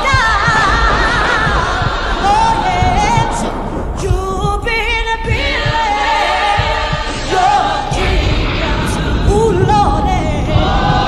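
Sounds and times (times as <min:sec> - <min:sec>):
voices singing wavering notes: 0:00.0 - 0:11.0.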